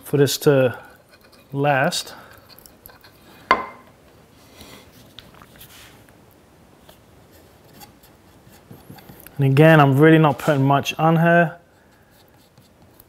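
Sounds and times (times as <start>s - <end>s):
stick scraping inside wood: 0.9s - 3.6s.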